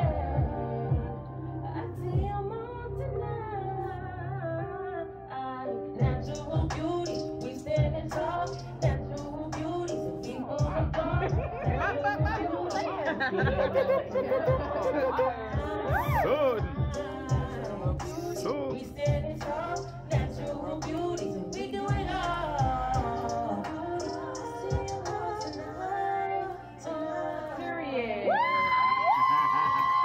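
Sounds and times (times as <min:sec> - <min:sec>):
woman singing into microphone: 0:00.0 - 0:29.2
backing music with drum beat: 0:06.0 - 0:13.8, 0:14.4 - 0:14.9, 0:15.6 - 0:25.7.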